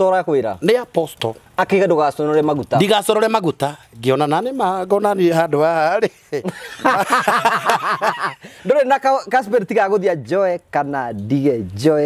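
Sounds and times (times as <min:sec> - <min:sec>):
men laughing heartily: 0:06.0 - 0:08.7.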